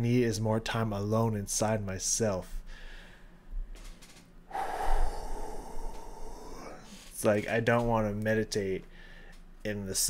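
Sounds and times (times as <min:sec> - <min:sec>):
man exhaling breathily: 0:04.5 - 0:07.1.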